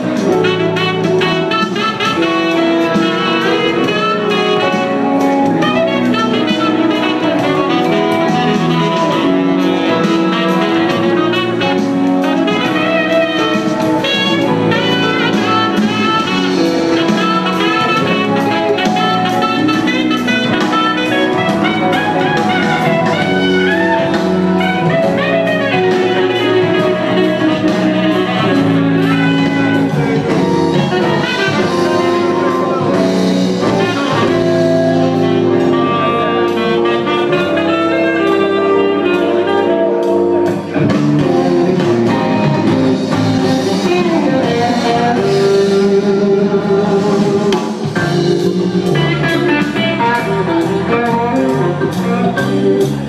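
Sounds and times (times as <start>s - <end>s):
electric guitar lead line: 0.0s - 53.0s
steady beat: 0.0s - 53.0s.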